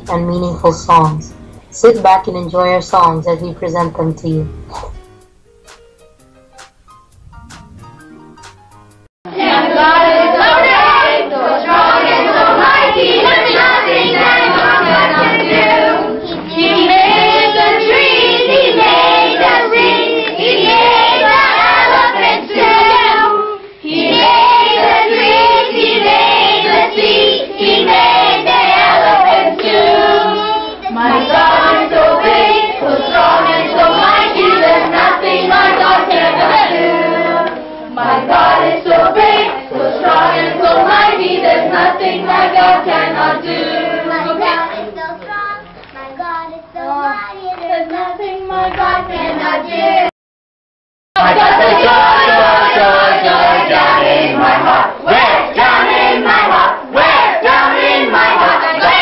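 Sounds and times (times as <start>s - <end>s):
children singing: 9.3s - 50.1s, 51.2s - 59.0s.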